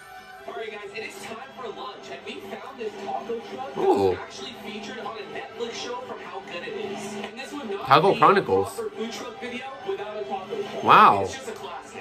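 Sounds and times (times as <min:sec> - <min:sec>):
quiet background music: 0:00.0 - 0:12.0
man talking: 0:03.8 - 0:04.2, 0:07.8 - 0:08.8, 0:10.8 - 0:11.4.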